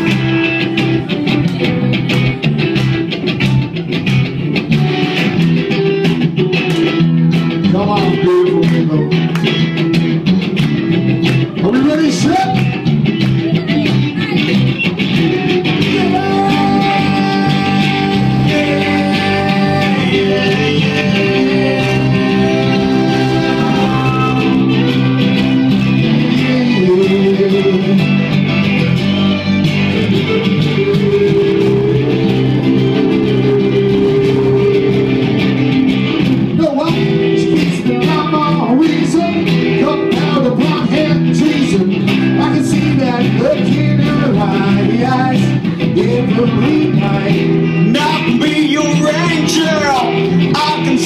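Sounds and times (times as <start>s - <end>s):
person singing: 0.0s - 3.0s, 13.3s - 35.8s, 36.5s - 51.0s
acoustic guitars playing: 0.0s - 51.0s.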